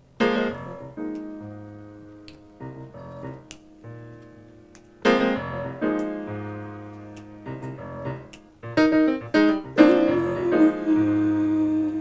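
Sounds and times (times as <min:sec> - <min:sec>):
slow jazz piano: 0:00.0 - 0:12.0.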